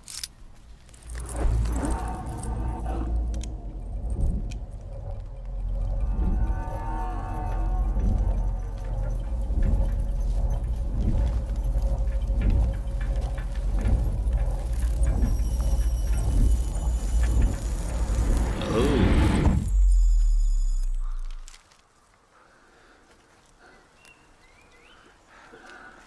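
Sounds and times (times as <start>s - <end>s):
film music: 0.2s - 21.6s
deep low rumble: 0.8s - 21.6s
loud low drone: 0.9s - 21.5s.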